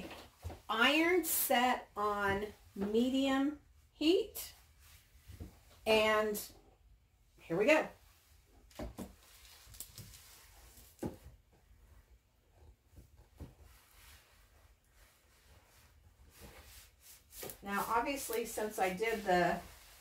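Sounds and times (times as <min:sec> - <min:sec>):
iron rubbing over paper: 0:15.1 - 0:20.0.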